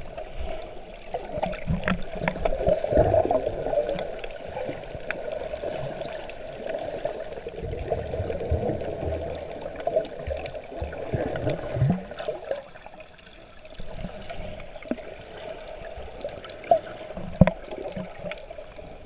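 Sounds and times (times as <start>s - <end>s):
water sloshing and gurgling underwater: 0.0s - 19.0s.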